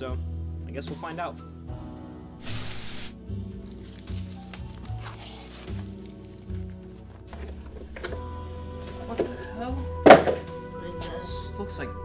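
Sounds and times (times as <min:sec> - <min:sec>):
background music: 0:00.0 - 0:12.0
cardboard box thunk: 0:10.0 - 0:10.4.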